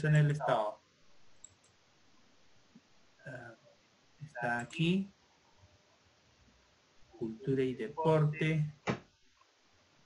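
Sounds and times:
computer mouse clicks: 1.4 - 1.8.

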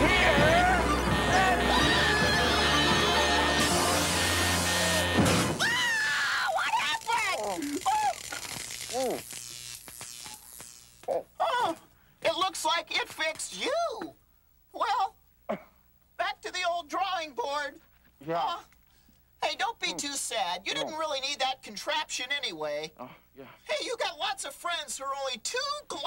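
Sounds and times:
comedy music: 0.0 - 5.6
loud hissing blast: 3.6 - 6.0.

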